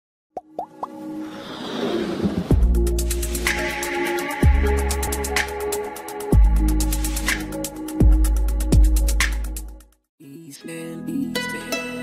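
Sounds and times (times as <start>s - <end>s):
whoosh with held musical tone: 1.1s - 2.6s.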